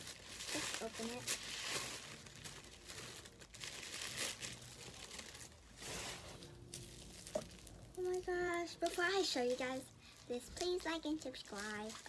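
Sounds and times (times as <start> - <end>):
wrapping paper crinkling: 0.0 - 12.0.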